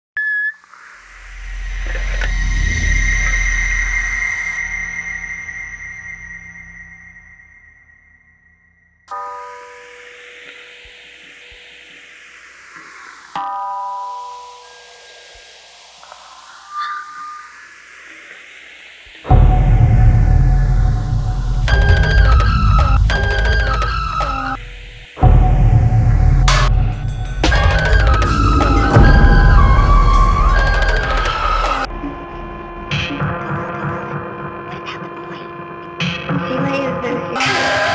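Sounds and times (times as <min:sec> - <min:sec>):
high ringing tone: 0:01.4 - 0:11.4, 0:13.4 - 0:15.6, 0:16.5 - 0:18.1
sweeping hiss: 0:09.4 - 0:19.4
deep rumbling swell: 0:19.3 - 0:23.2, 0:24.6 - 0:32.9
loud low hit: 0:25.2 - 0:32.9.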